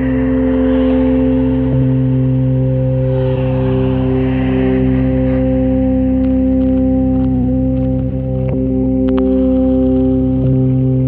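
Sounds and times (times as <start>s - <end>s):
sustained drone tones: 0.0s - 11.0s.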